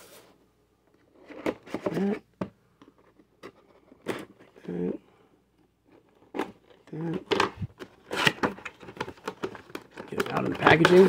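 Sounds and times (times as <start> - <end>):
toy box packaging crackling: 6.0 - 11.0.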